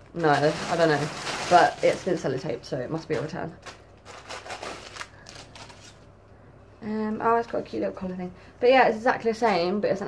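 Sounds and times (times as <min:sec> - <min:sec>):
plastic packaging crinkling: 0:00.0 - 0:06.1.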